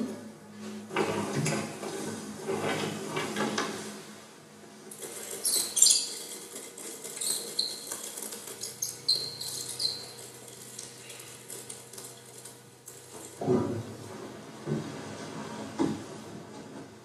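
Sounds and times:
high squeaks and scraping: 5.0 - 11.3.

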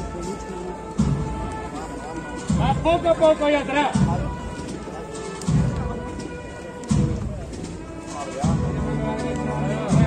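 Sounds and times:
crowd voices: 0.0 - 10.0
processional band playing: 0.0 - 10.0
bass drum beats: 3.9 - 4.7, 6.9 - 7.8.

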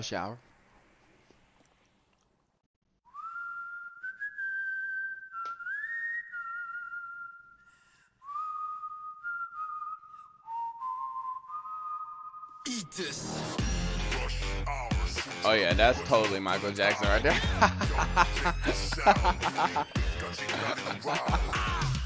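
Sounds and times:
whistled melody: 3.0 - 12.7.

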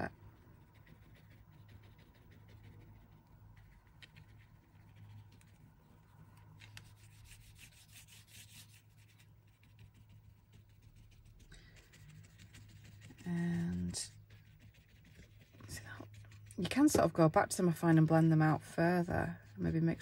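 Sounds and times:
low steady hum: 0.0 - 20.0
paintbrush strokes: 0.0 - 20.0
fingers rubbing on fabric: 6.6 - 17.3.

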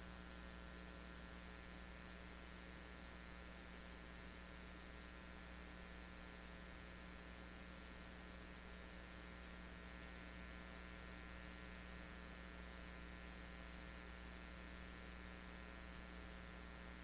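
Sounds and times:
electrical mains hum: 0.0 - 17.0.

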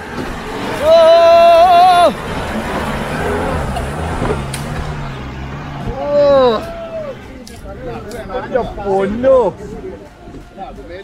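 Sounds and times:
diesel engine under load: 0.0 - 11.0.

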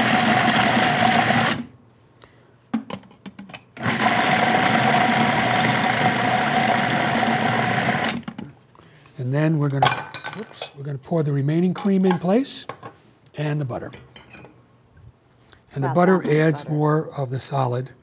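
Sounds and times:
food processor motor humming: 0.0 - 1.7, 3.8 - 8.2.

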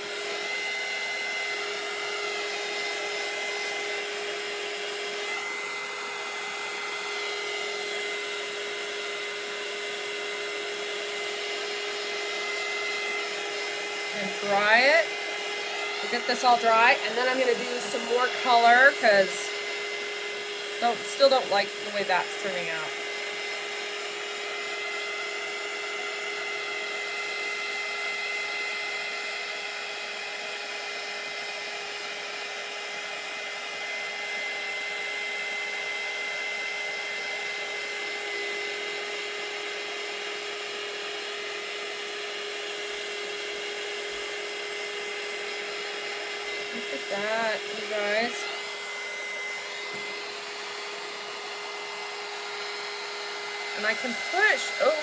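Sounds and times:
heat tool fan whirring: 0.0 - 55.0.

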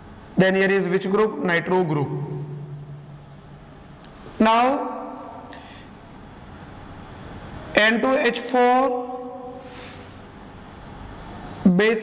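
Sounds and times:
marker writing on whiteboard: 0.0 - 0.5, 2.8 - 8.6, 9.4 - 12.0
man speaking: 0.4 - 2.5, 4.4 - 5.4, 7.8 - 9.6, 11.6 - 12.0.

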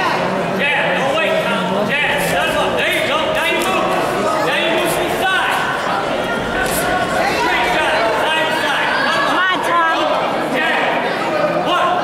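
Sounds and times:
crowd chatter: 0.0 - 12.0
voices calling out: 0.0 - 12.0.

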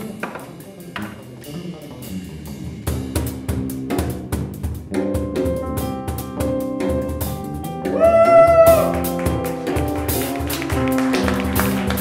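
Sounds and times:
acoustic jazz quartet: 0.0 - 8.0, 8.8 - 12.0.

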